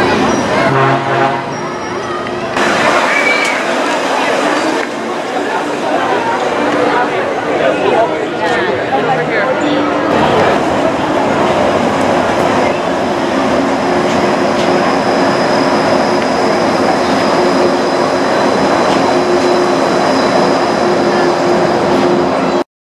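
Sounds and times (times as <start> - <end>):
monorail train passing: 0.0 - 22.6.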